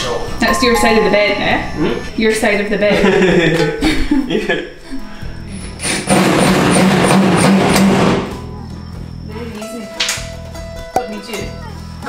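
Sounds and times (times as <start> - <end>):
plucked-string background music: 0.4 - 3.8, 8.3 - 12.0.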